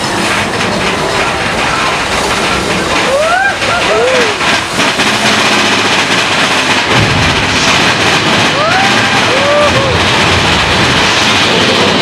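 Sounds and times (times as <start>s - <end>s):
roller coaster rumbling and rattling: 0.0s - 12.0s.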